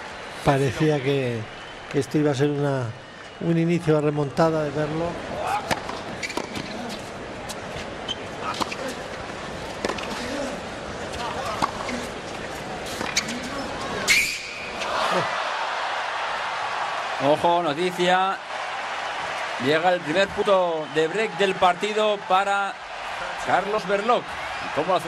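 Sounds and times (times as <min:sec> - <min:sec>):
crowd murmur: 0:08.4 - 0:14.1
tennis ball bouncing: 0:09.8 - 0:10.1
crowd cheering and applauding: 0:14.7 - 0:25.0.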